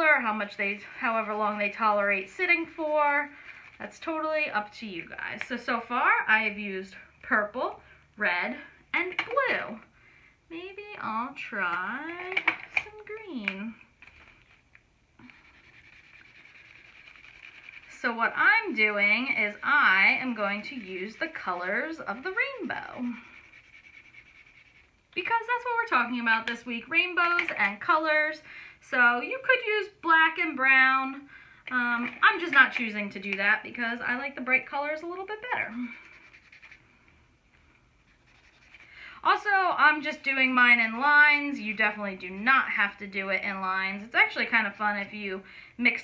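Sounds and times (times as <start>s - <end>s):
marker scratching on paper: 0.0s - 5.9s, 15.2s - 26.4s, 35.6s - 37.0s, 37.9s - 43.7s.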